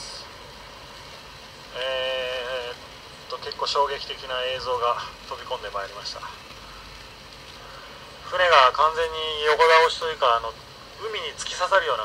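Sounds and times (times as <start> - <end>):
low steady background hum: 0.0 - 12.0
man's drawn-out hesitation sound: 1.7 - 6.5, 8.2 - 12.0.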